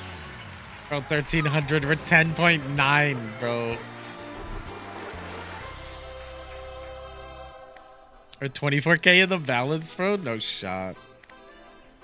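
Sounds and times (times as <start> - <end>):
sustained low music notes: 0.9 - 9.9.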